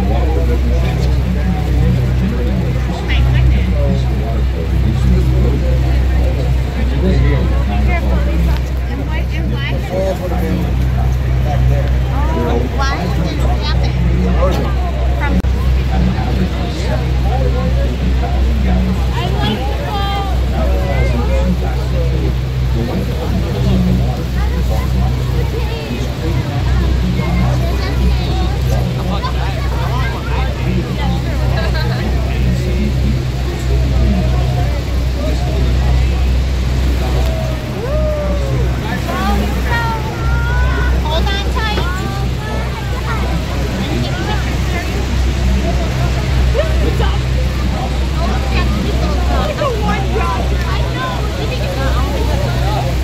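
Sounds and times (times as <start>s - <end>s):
boat engine droning: 0.0s - 53.0s
passengers chattering: 0.0s - 53.0s
rushing water and wind: 0.0s - 53.0s.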